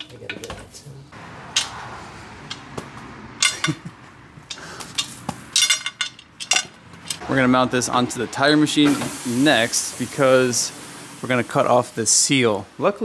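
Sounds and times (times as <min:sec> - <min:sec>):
metal nuts clinking on concrete: 0:03.4 - 0:07.2.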